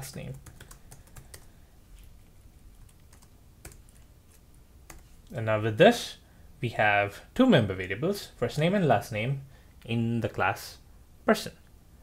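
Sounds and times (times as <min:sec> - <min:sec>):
computer keyboard keystrokes: 0:00.0 - 0:01.5, 0:02.9 - 0:04.0.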